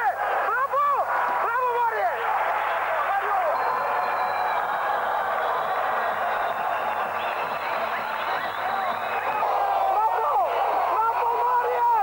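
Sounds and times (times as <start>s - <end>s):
crowd hubbub: 2.0s - 12.0s.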